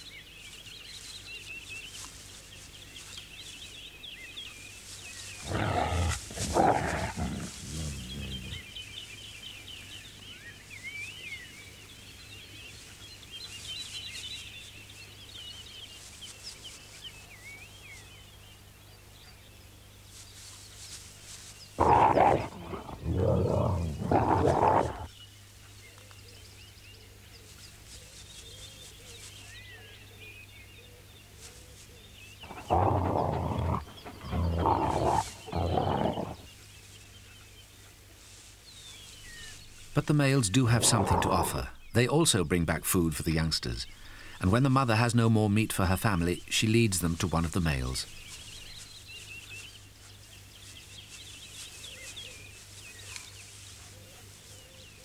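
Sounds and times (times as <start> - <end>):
wolves snarling and growling: 5.4 - 8.7, 21.8 - 25.1, 32.4 - 36.5, 40.6 - 41.8.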